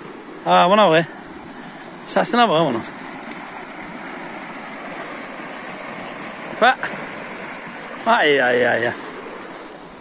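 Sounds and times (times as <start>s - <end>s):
water rushing in a canal: 0.0s - 10.0s.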